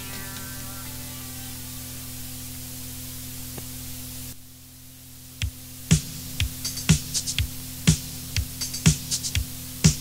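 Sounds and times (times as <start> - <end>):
low constant hum: 0.0 - 10.0
steady hiss: 0.0 - 10.0.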